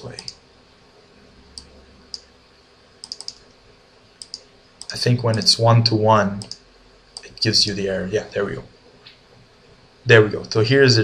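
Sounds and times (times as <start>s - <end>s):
computer mouse and key clicks: 0.0s - 0.4s, 1.6s - 2.3s, 3.0s - 3.5s, 4.2s - 5.6s, 6.4s - 7.4s.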